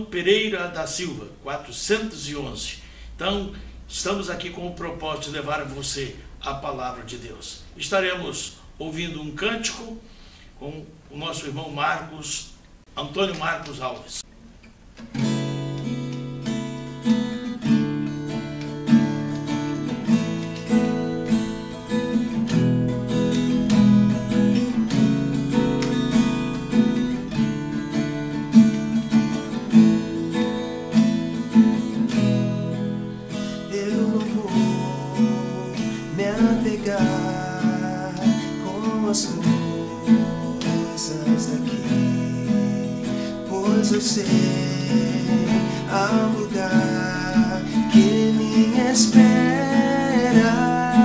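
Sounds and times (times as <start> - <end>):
acoustic guitar strumming: 0.0 - 8.4, 13.0 - 51.0.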